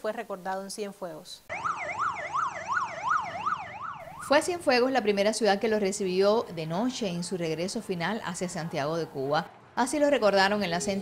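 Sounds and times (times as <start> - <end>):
police siren fast yelp: 1.5 - 4.7.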